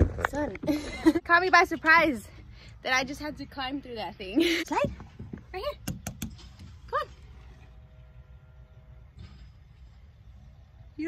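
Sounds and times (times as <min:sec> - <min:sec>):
faint multi-tone hum: 0:00.0 - 0:11.0.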